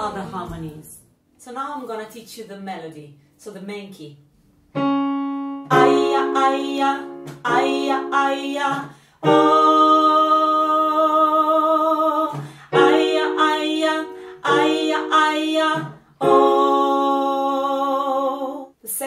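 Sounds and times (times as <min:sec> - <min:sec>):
electric keyboard chords: 0:04.8 - 0:10.9, 0:12.7 - 0:17.3
woman singing: 0:05.7 - 0:18.8.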